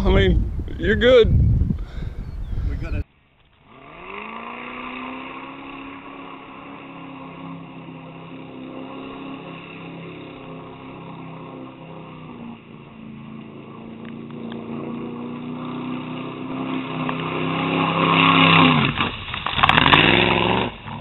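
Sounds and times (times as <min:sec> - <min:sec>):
distant truck engine revving: 0:03.6 - 0:21.0.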